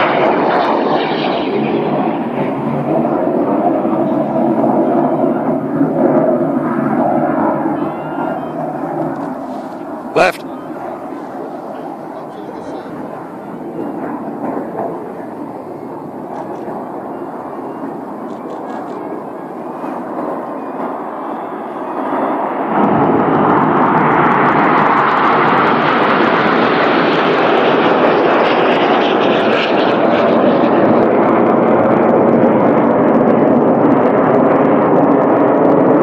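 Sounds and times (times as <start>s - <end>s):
jets flying overhead: 0.0s - 36.0s.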